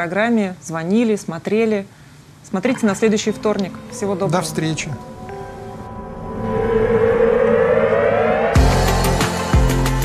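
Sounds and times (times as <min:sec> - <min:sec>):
synth riser theme music: 0:03.8 - 0:10.0.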